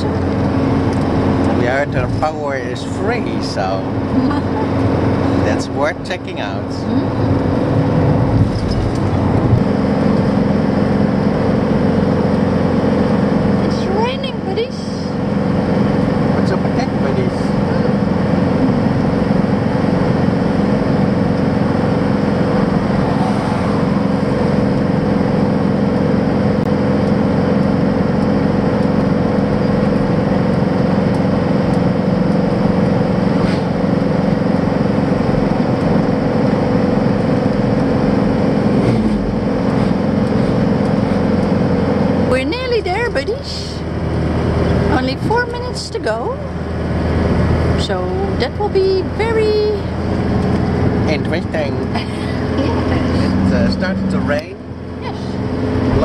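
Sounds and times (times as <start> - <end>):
van engine and road noise: 0.0 - 56.0.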